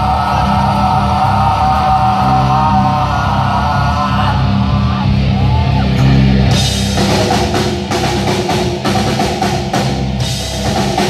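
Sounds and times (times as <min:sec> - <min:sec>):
bass guitar: 0:00.0 - 0:11.0
drums: 0:00.0 - 0:11.0
electric guitars: 0:00.0 - 0:11.0.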